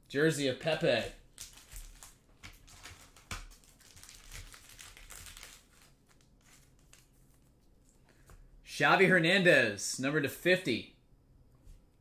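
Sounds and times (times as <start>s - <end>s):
cards rustling: 0.7s - 8.3s.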